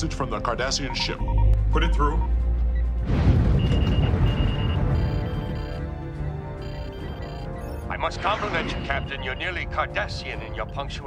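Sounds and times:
rapid high electronic beeping: 0:03.6 - 0:05.8, 0:06.6 - 0:07.9.

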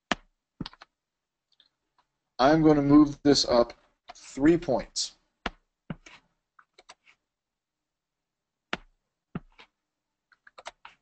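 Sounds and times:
computer keyboard keystrokes: 0:00.1 - 0:00.9, 0:10.3 - 0:11.0.

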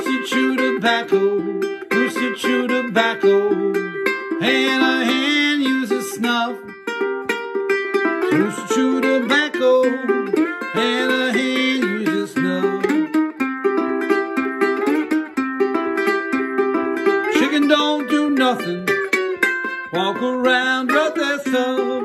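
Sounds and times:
slide ukulele blues riff: 0:00.0 - 0:22.0.

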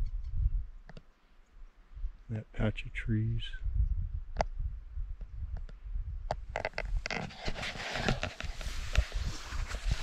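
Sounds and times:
clothing and camera rustling: 0:06.6 - 0:10.0.

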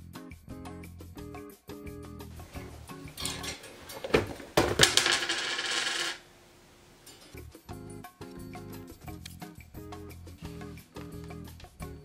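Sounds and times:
hangers scraping on closet rail: 0:02.9 - 0:04.6.

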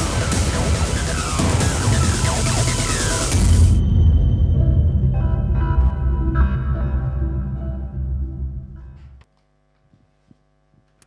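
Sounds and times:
intro music: 0:00.0 - 0:09.1
electrical mains hum: 0:05.8 - 0:11.0.

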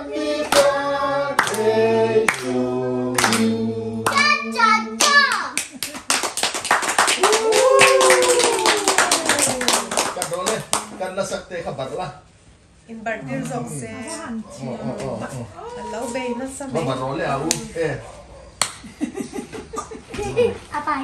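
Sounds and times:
group singing: 0:00.0 - 0:05.0
fast clapping: 0:05.0 - 0:11.0
people cheering: 0:06.8 - 0:10.6.

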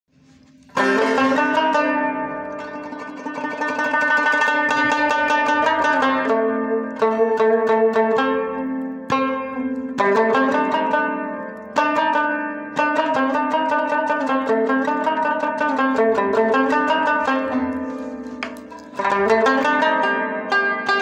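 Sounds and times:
rubab being plucked: 0:00.1 - 0:21.0.

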